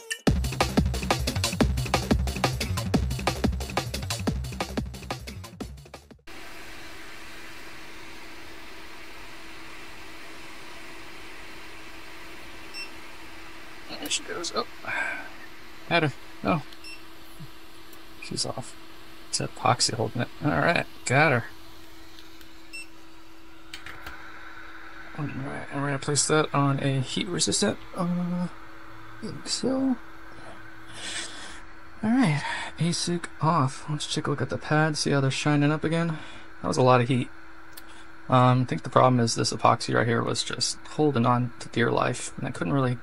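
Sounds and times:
electronic music: 0:00.0 - 0:06.0
hot air gun hissing: 0:30.4 - 0:31.7.

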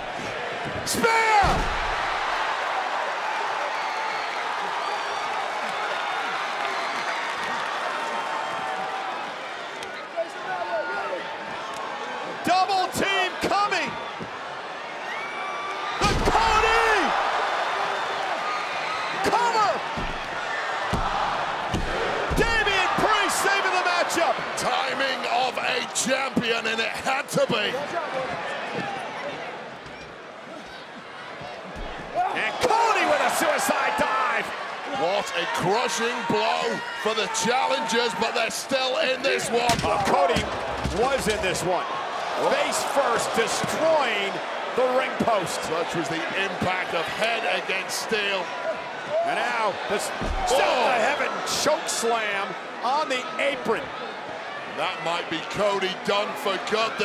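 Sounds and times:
arena crowd shouting and cheering: 0:00.0 - 0:57.0.

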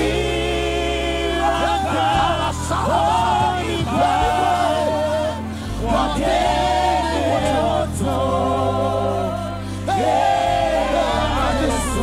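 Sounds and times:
band with bass line: 0:00.0 - 0:12.0
singer and choir singing: 0:00.0 - 0:12.0.

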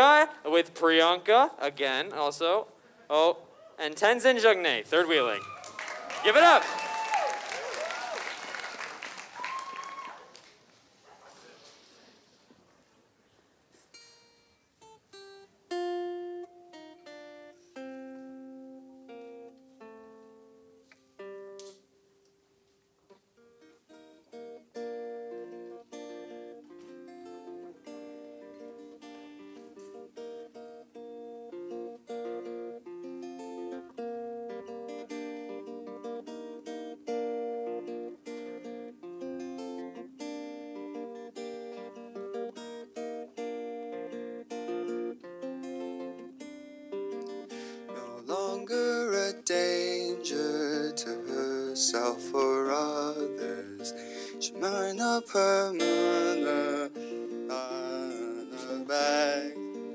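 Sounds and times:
acoustic guitar playing: 0:00.0 - 0:05.4, 0:06.2 - 0:06.6, 0:13.8 - 0:59.9.

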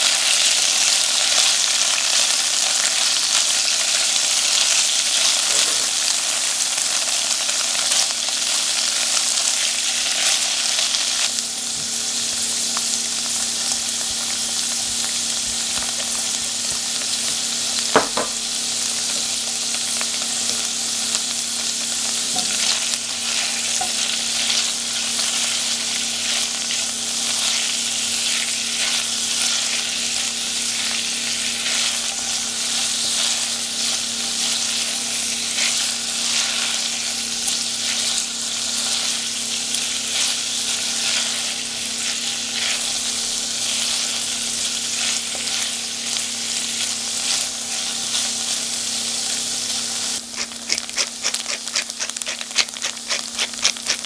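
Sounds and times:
tofu sizzling in oil: 0:00.0 - 0:54.0
sharp knock: 0:18.0 - 0:18.4
spatula scraping a pan: 0:50.3 - 0:54.0.

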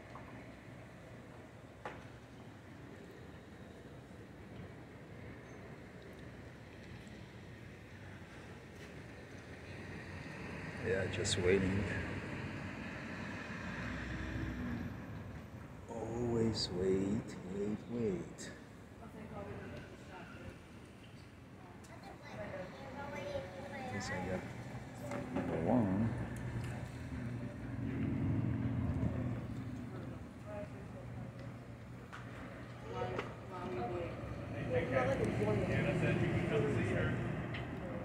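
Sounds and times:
street traffic rumble: 0:06.9 - 0:38.0.

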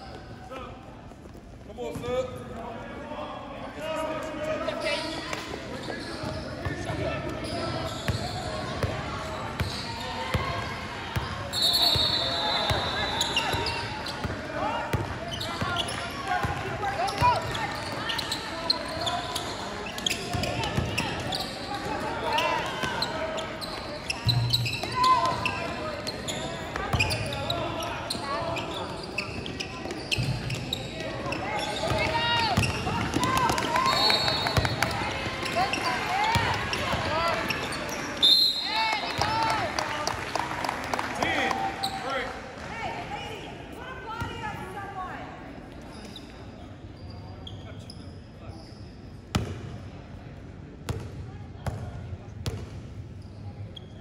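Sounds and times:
indistinct voices in hall: 0:00.0 - 0:48.7
sneaker squeak: 0:04.6 - 0:10.3, 0:11.2 - 0:16.2, 0:17.0 - 0:38.8, 0:45.8 - 0:49.6, 0:53.2 - 0:54.0
basketball bouncing on court: 0:29.8 - 0:33.7, 0:34.4 - 0:37.7, 0:50.9 - 0:52.8.

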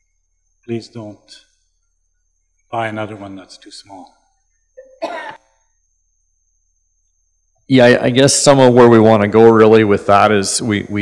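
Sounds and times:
faint high-pitched whine: 0:00.0 - 0:11.0
person clearing throat: 0:04.8 - 0:05.5.

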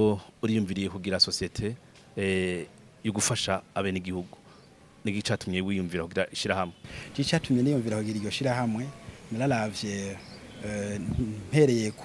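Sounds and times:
man speaking: 0:00.0 - 0:04.4, 0:05.0 - 0:12.0.

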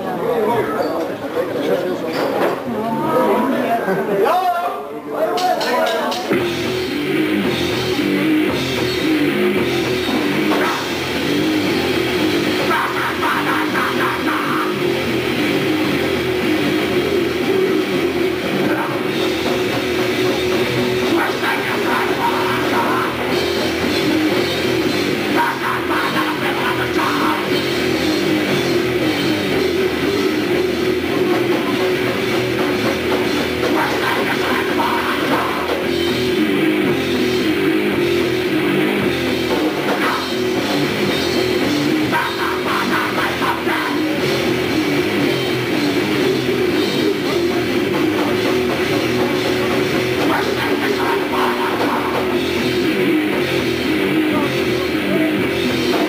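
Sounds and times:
drum kit: 0:05.3 - 0:56.0
distorted guitar: 0:05.6 - 0:56.0.

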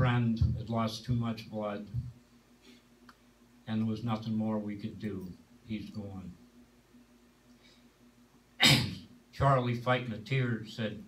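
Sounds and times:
person sneezing: 0:08.6 - 0:09.1.

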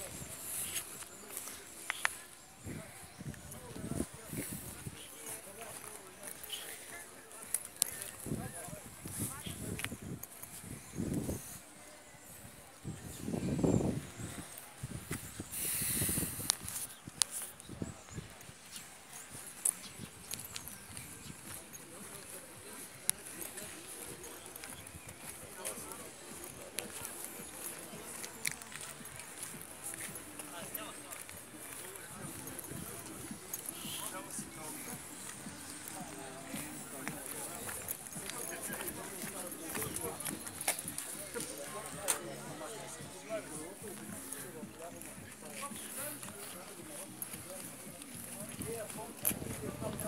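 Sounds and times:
faint voices talking: 0:00.0 - 0:50.0
footsteps on pavement: 0:00.0 - 0:50.0.

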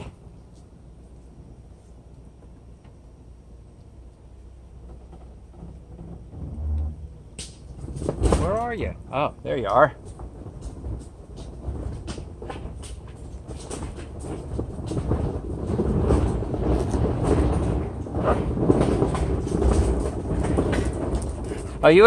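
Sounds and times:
car rolling on asphalt: 0:00.0 - 0:22.0.

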